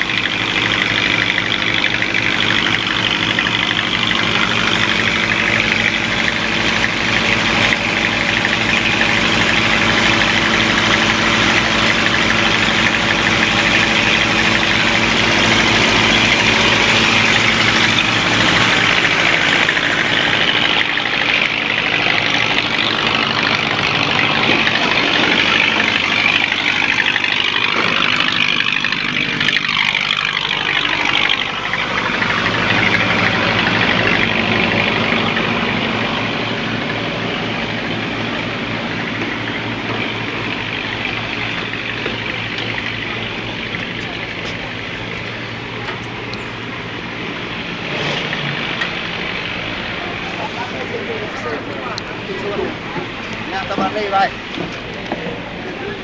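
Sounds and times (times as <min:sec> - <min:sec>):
boat diesel engine idling: 0:00.0 - 0:56.0.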